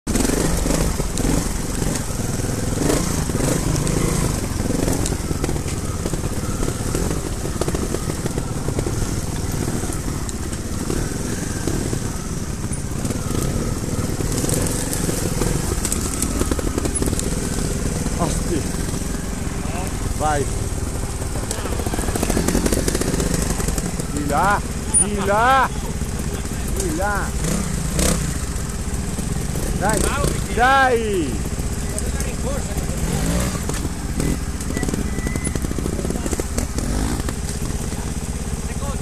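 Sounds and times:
motorcycle engines revving: 0.0 - 39.0.

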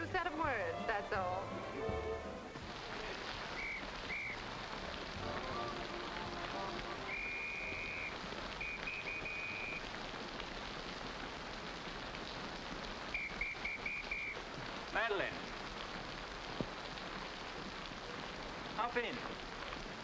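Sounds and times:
heavy rain pouring: 0.0 - 20.0
whistle blasts: 3.5 - 4.4, 7.0 - 9.9, 13.1 - 14.4.

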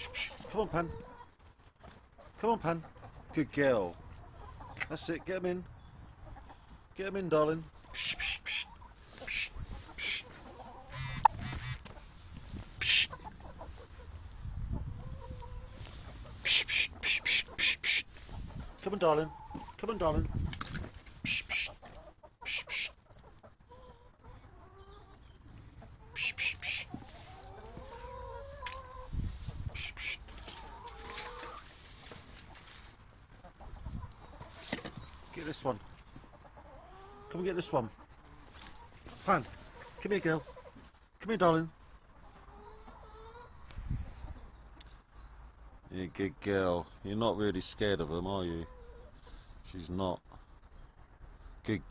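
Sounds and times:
person making hissing calls: 0.0 - 0.4, 8.0 - 10.3, 12.8 - 13.2, 16.4 - 18.1, 21.2 - 21.8, 22.4 - 23.0, 26.2 - 27.0, 29.7 - 30.3
chickens clucking: 0.0 - 41.1, 41.8 - 47.0, 47.8 - 51.4.

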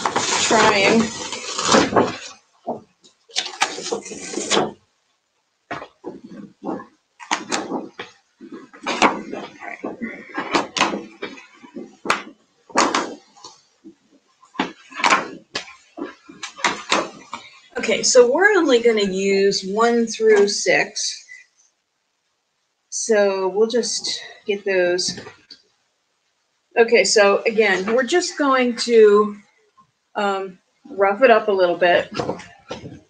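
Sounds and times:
stamps peeling crackles: 0.0 - 4.9, 5.7 - 17.5
plastic sheet rustling: 0.0 - 5.0, 5.7 - 18.8, 32.0 - 33.0.

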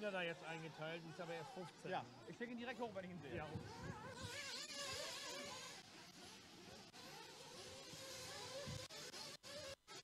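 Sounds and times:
rc car motors whining: 0.0 - 10.0.

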